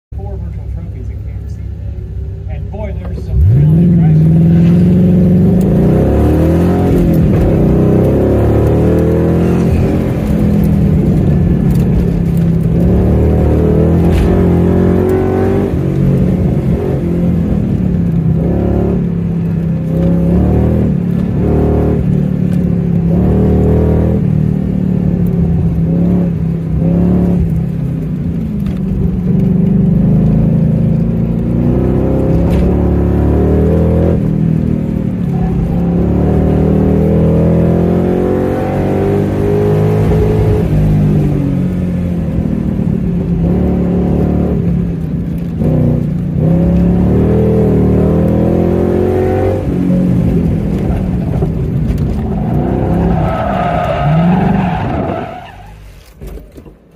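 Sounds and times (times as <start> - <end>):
car engine revving: 0.2 - 56.6.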